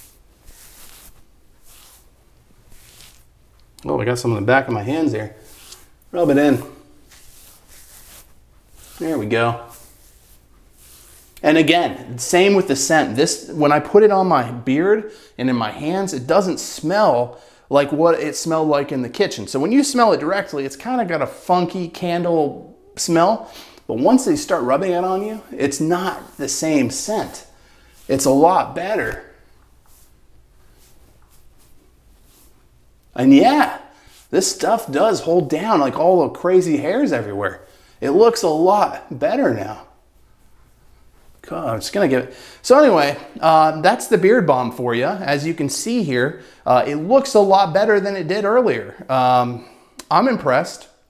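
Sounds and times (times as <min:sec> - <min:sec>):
hands rubbing beard: 0:00.0 - 0:12.9, 0:24.0 - 0:36.2.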